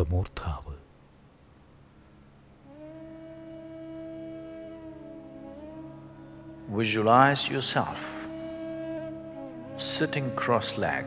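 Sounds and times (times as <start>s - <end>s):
faint low hum: 0.0s - 11.0s
steady droning tone: 0.0s - 11.0s.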